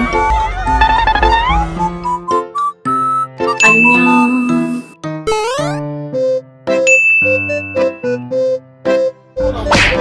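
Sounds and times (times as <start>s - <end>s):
playful bell-like music: 3.5s - 5.8s, 6.7s - 8.6s.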